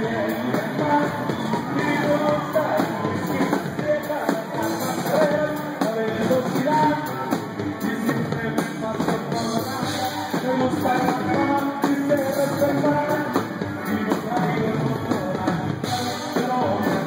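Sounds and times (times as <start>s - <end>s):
live band music: 0.0s - 17.0s.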